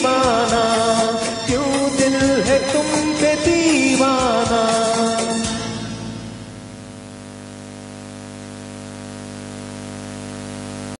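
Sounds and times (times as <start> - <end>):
electrical hum with hiss: 2.6 - 11.0.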